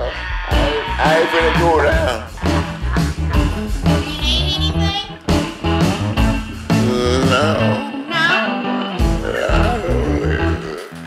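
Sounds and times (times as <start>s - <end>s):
deep bass line: 0.0s - 7.8s, 9.0s - 10.8s
blues band playing: 0.0s - 11.0s.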